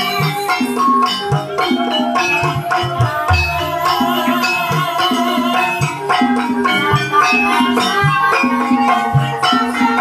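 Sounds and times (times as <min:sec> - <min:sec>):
metal keyed percussion pattern: 0:00.0 - 0:10.0.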